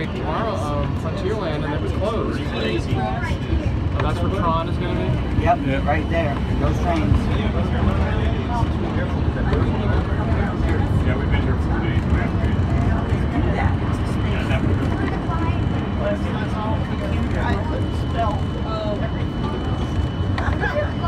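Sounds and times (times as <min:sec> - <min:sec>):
passengers chattering: 0:00.0 - 0:21.0
train low rumble: 0:00.0 - 0:21.0.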